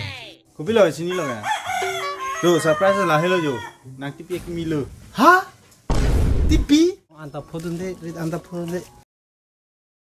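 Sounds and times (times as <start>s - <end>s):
rooster crowing: 1.1s - 3.8s.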